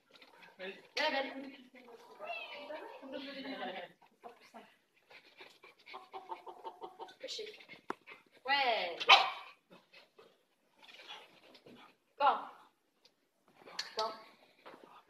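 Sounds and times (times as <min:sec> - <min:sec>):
dog barking: 0:09.0 - 0:09.6.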